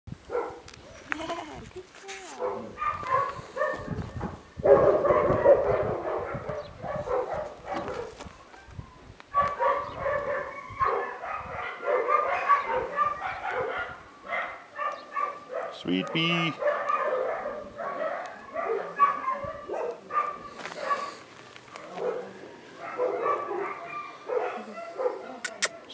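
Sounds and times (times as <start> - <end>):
dogs barking and yipping: 0.3 - 0.7, 2.4 - 25.9
people's voices: 17.6 - 25.9.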